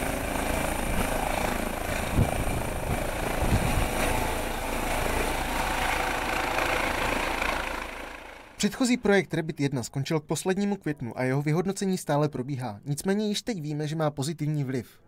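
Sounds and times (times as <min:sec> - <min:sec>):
helicopter rotor and turbine: 0:00.0 - 0:09.1.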